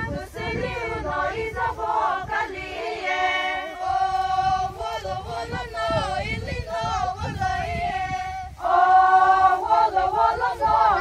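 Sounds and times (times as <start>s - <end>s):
women singing in unison: 0.0s - 11.0s.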